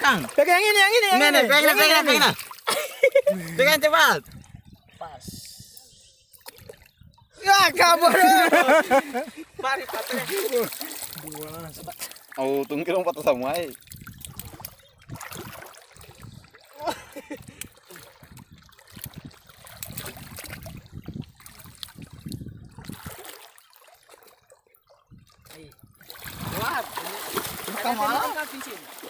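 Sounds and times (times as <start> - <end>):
shallow sea water splashing: 0.0 - 4.7, 6.3 - 29.0
people talking loudly: 7.3 - 11.9, 26.4 - 28.9.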